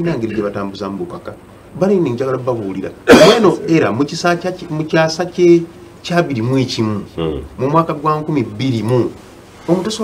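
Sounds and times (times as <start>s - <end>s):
man coughing: 3.1s - 3.8s.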